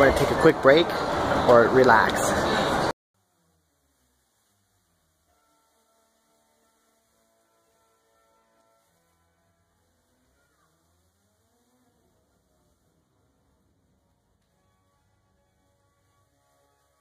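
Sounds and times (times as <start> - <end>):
faint music: 0.0 - 17.0.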